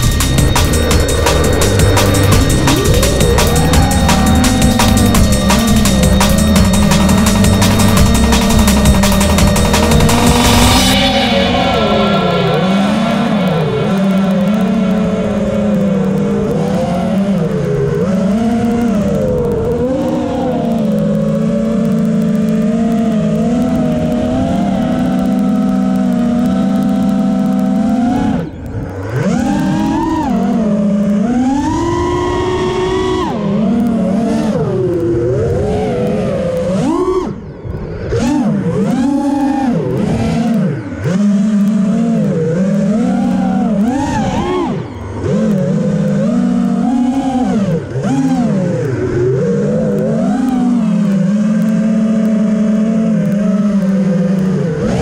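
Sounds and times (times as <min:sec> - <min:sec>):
drone propellers buzzing and whining: 0:00.0 - 0:55.0.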